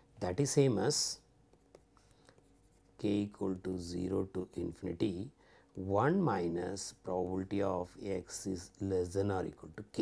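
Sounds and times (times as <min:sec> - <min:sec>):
stylus tapping on tablet screen: 0:01.4 - 0:02.8.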